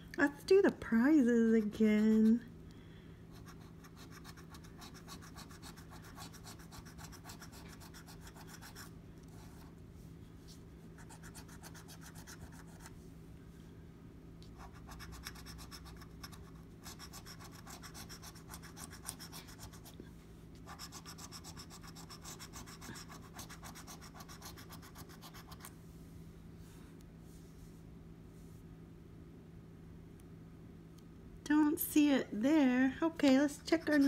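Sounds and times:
coin scratching lottery ticket: 0:14.7 - 0:19.9, 0:20.7 - 0:25.6.

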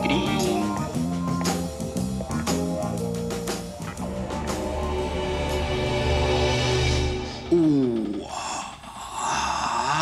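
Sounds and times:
man sighing: 0:07.4 - 0:10.0.

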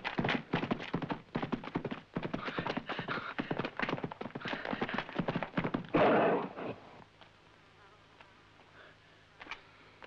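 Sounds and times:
faint background noise: 0:00.0 - 0:10.0
rough burst of bull noise: 0:05.9 - 0:06.9.

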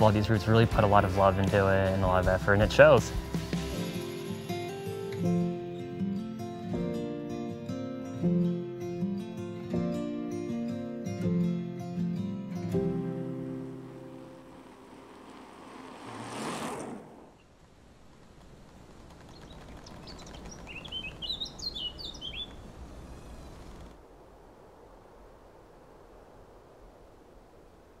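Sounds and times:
faint outdoor ambience: 0:08.4 - 0:28.0
brief whoosh: 0:13.8 - 0:17.4
small bird chirping: 0:19.2 - 0:23.9.

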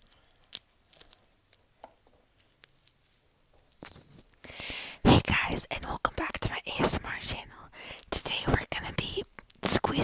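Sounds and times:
girl whispering: 0:04.5 - 0:10.0.

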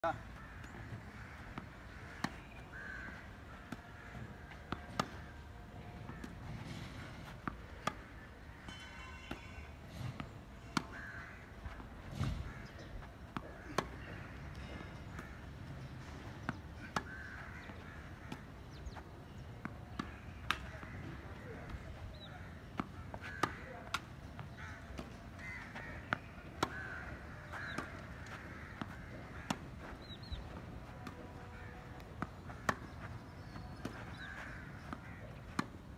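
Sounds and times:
crows cawing: 0:00.2 - 0:05.2, 0:10.8 - 0:11.8, 0:16.8 - 0:18.5, 0:22.3 - 0:23.7, 0:24.4 - 0:30.4, 0:33.8 - 0:35.7
tennis ball hit by racket: 0:01.5 - 0:02.6, 0:04.5 - 0:05.3, 0:06.1 - 0:08.3, 0:11.7 - 0:14.2, 0:16.4 - 0:21.8, 0:22.7 - 0:35.8
tennis racket striking ball: 0:22.8 - 0:31.2, 0:31.8 - 0:35.8.

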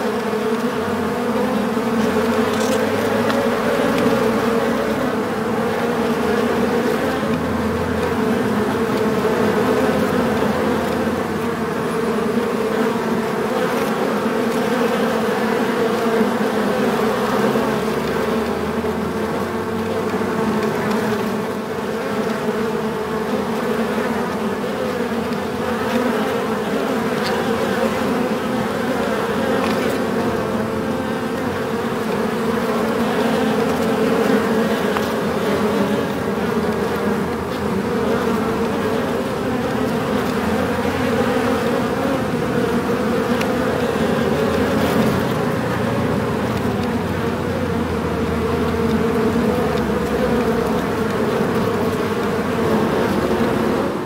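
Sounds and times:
bees buzzing in a hive: 0:00.0 - 0:54.0.

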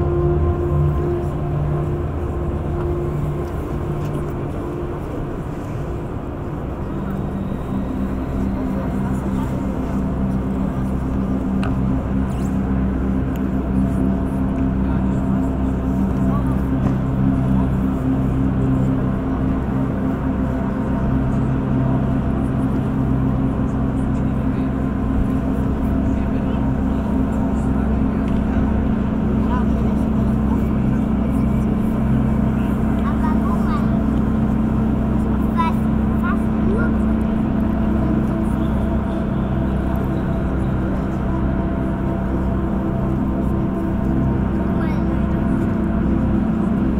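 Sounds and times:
ambient music drone: 0:00.0 - 0:46.9
murmur of voices: 0:00.0 - 0:46.9.

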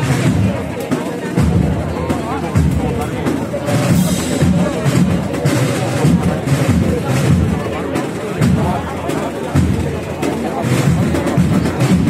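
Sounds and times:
wind band playing a march: 0:00.0 - 0:00.6, 0:01.3 - 0:12.0
crowd chatter: 0:00.0 - 0:12.0
drum beats: 0:00.0 - 0:12.0.

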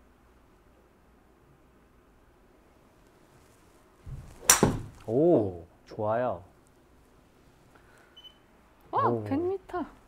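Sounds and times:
knock: 0:04.1 - 0:05.0
golf club striking ball: 0:04.1 - 0:05.1.

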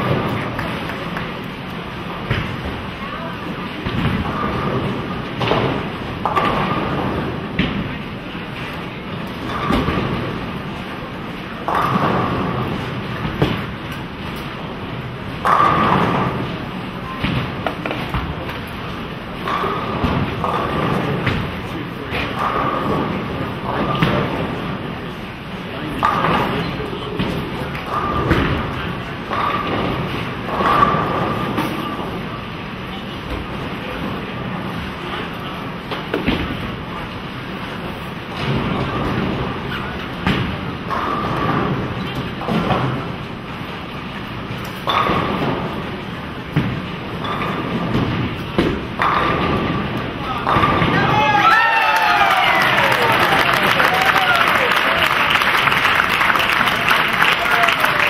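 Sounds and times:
bowling balls rumbling: 0:00.0 - 0:58.0.

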